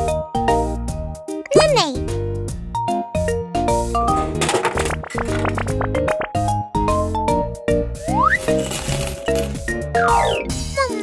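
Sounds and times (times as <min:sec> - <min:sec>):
candies rattling into paper bag: 0:08.4 - 0:09.7.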